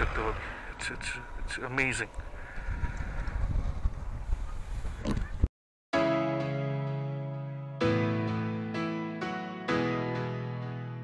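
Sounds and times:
wind buffeting microphone: 0:00.0 - 0:05.5.

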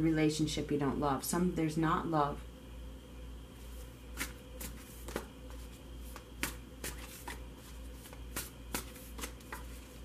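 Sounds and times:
low steady hum: 0:00.0 - 0:10.0
cards being shuffled: 0:04.1 - 0:10.0.

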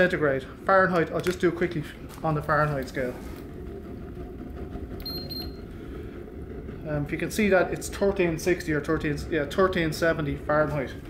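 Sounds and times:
stove burning with low rumble: 0:00.0 - 0:11.0
thermometer beeps: 0:05.0 - 0:05.6.

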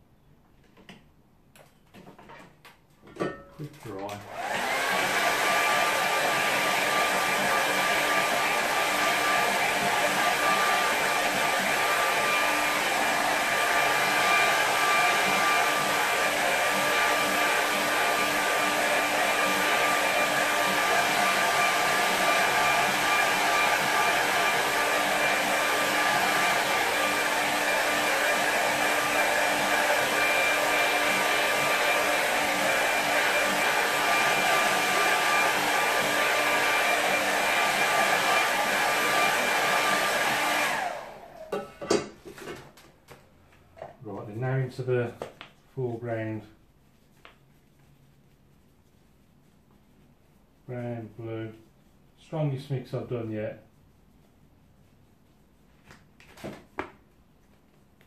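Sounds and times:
hair dryer blowing: 0:04.0 - 0:42.2.

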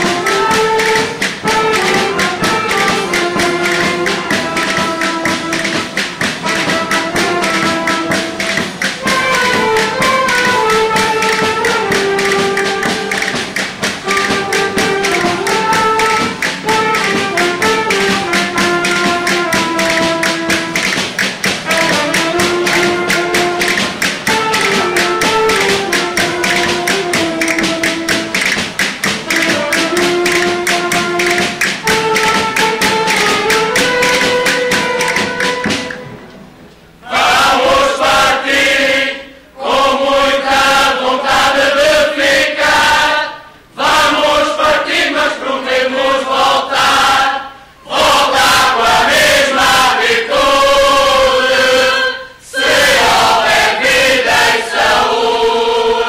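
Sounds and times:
folk string band playing: 0:00.0 - 0:38.6.

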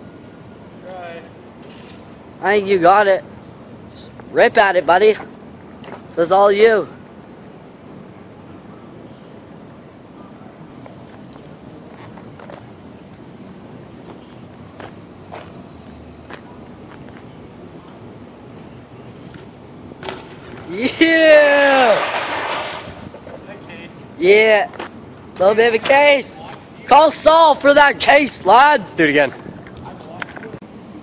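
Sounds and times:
bike landing knock: 0:20.0 - 0:20.7
loud wordless shout: 0:20.7 - 0:22.1.

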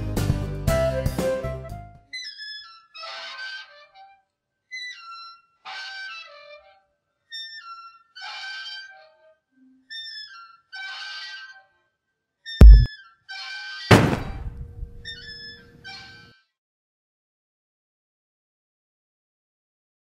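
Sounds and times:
background music: 0:00.0 - 0:02.0
playground swing squeaking: 0:02.1 - 0:04.1, 0:04.7 - 0:11.6.

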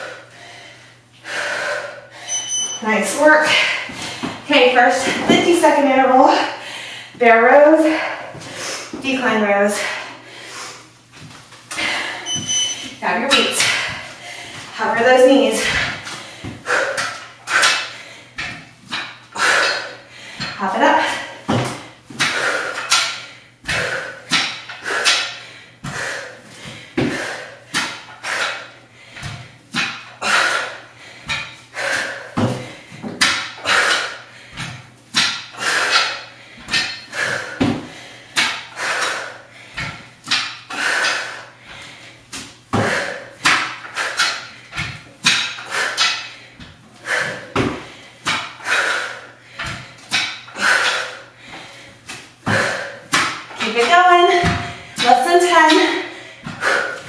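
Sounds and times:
woman breathing hard: 0:00.0 - 0:02.6, 0:03.4 - 0:05.3, 0:06.2 - 0:09.0, 0:09.7 - 0:14.8, 0:15.4 - 0:57.0.

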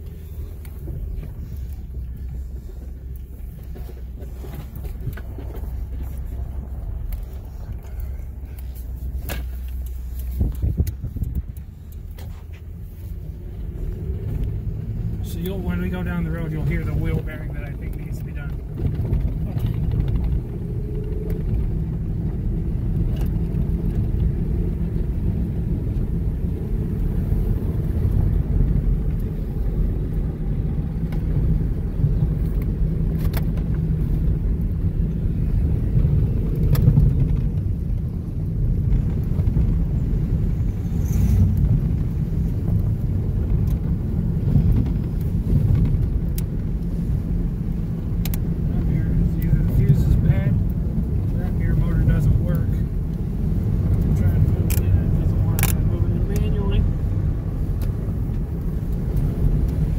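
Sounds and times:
road and tyre rumble: 0:00.0 - 0:59.9.

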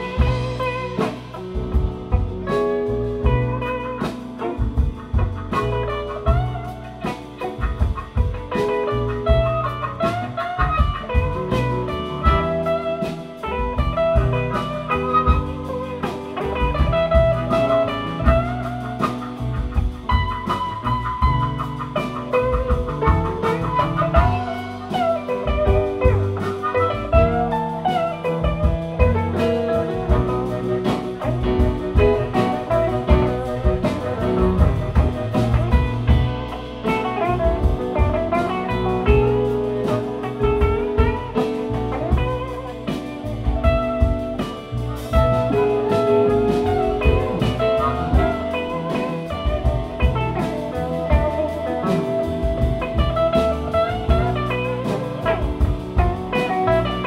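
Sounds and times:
blues band playing: 0:00.0 - 0:57.0.

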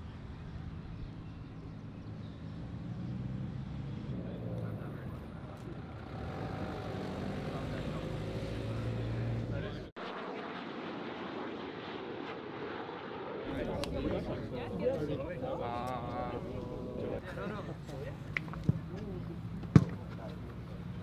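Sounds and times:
low engine hum: 0:00.0 - 0:10.0
outdoor background noise: 0:00.0 - 0:21.0
background voices: 0:13.5 - 0:21.0.

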